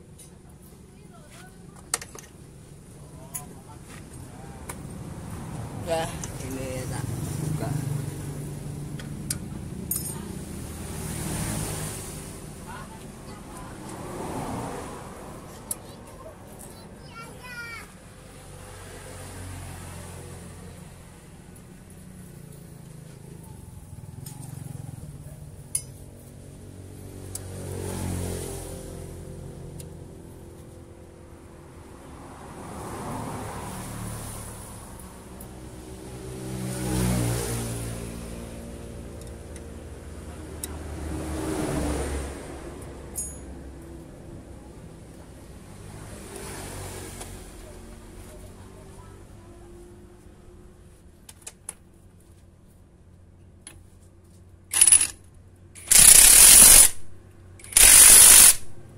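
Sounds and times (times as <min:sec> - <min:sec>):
road vehicles passing by: 0:00.0 - 0:58.9
metallic clinks of wrench: 0:09.9 - 0:10.2, 0:43.1 - 0:43.5, 0:54.7 - 0:55.2.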